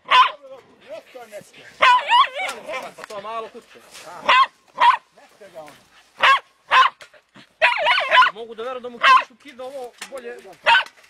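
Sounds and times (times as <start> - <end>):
dog barking in sharp yaps: 0.0 - 0.4, 1.8 - 2.7, 4.2 - 5.1, 6.2 - 7.0, 7.6 - 8.4, 9.0 - 9.3, 10.6 - 11.0.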